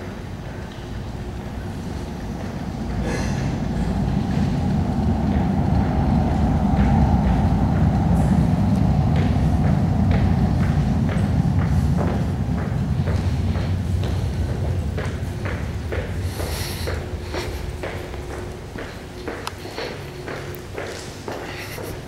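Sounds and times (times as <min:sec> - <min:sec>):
train rumbling in tunnel: 0:00.0 - 0:22.0.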